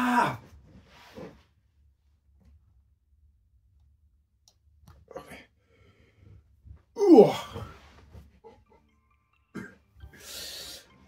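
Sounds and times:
man coughing: 0:09.5 - 0:09.8.

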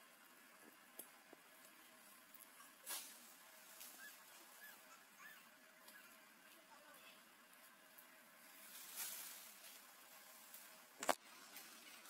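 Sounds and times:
high animal calls: 0:03.9 - 0:06.3.

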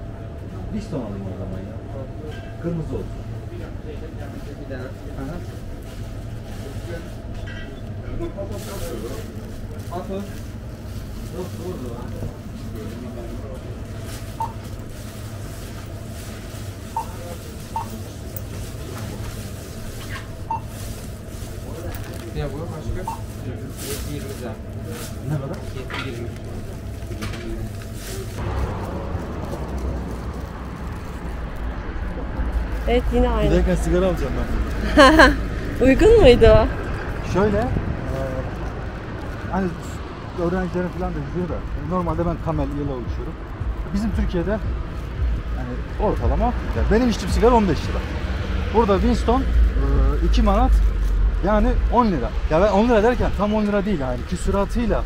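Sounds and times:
steady electrical hum: 0:00.0 - 0:36.9
low outdoor rumble: 0:00.0 - 0:55.0
voices: 0:16.3 - 0:55.0.

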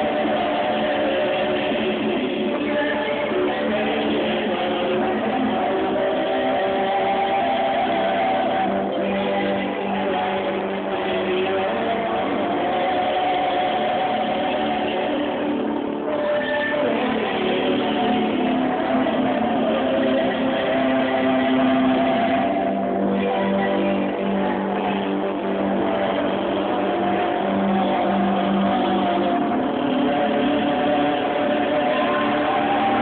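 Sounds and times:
backing music: 0:00.0 - 0:33.0
person singing: 0:00.0 - 0:33.0
voices holding a long note: 0:00.0 - 0:33.0.

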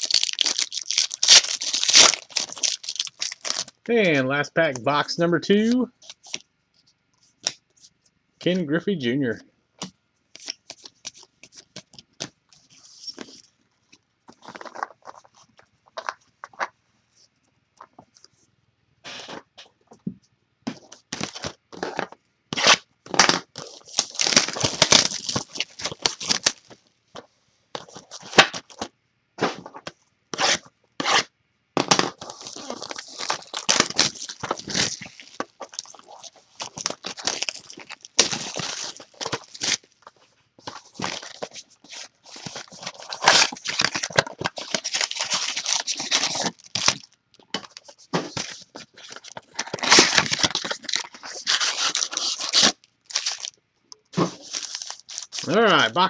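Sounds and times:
foil packs rustling: 0:00.0 - 0:03.9, 0:23.5 - 0:26.8, 0:32.1 - 0:53.5, 0:54.2 - 0:55.9
shrink wrap tearing and crinkling: 0:00.0 - 0:03.9, 0:21.2 - 0:26.8, 0:32.0 - 0:53.6, 0:54.2 - 0:56.0.

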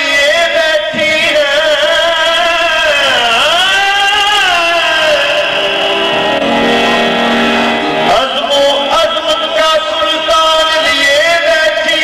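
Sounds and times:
man singing held note: 0:02.3 - 0:06.4
harmonium chord: 0:04.6 - 0:10.3.

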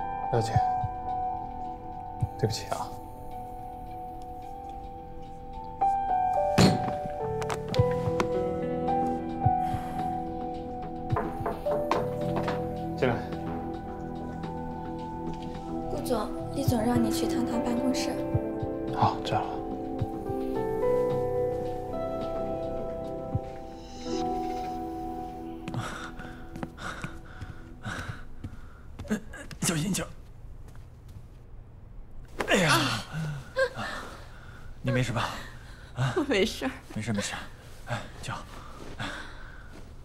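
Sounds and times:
background music of sustained notes: 0:00.0 - 0:40.0
man panting heavily: 0:25.7 - 0:29.0.

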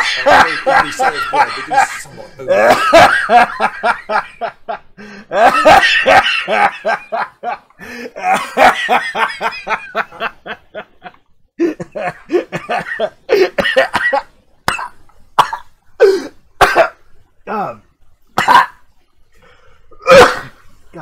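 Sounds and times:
person coughing and gasping: 0:00.0 - 0:03.4, 0:11.6 - 0:17.0, 0:18.4 - 0:18.8, 0:20.0 - 0:20.6
person laughing: 0:00.0 - 0:04.5.

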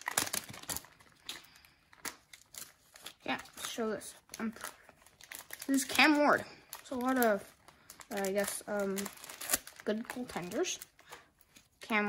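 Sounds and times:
plastic wrapper crackling: 0:00.0 - 0:12.0.

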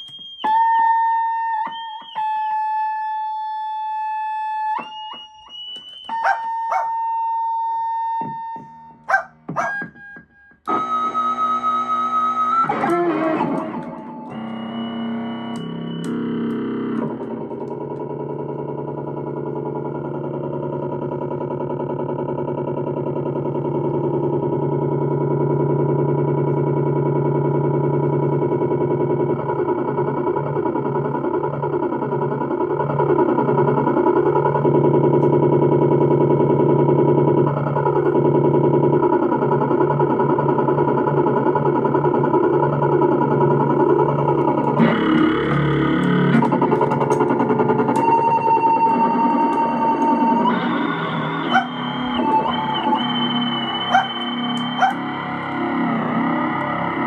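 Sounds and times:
electronic keyboard drone: 0:00.0 - 0:57.0
glitchy clicks: 0:04.6 - 0:57.0.

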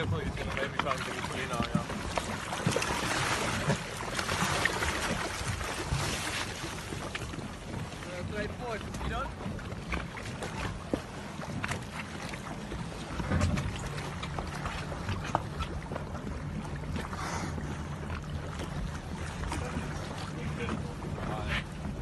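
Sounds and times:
boat engine hum: 0:00.0 - 0:22.0
water splashing on hull: 0:00.0 - 0:22.0.

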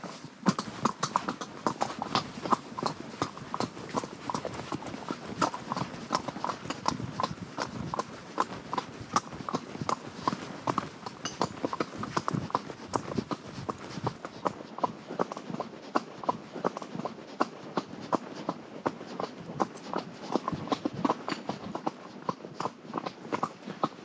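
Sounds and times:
horse hooves on gravel: 0:00.0 - 0:15.3.

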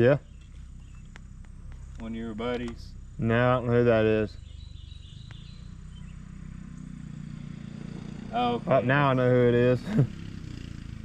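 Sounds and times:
dirt bike engine running: 0:00.2 - 0:11.0.

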